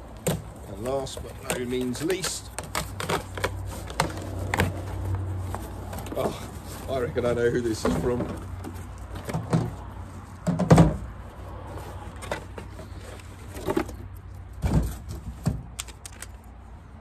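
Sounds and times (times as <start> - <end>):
rustling cardboard and packaging: 0.0 - 16.4.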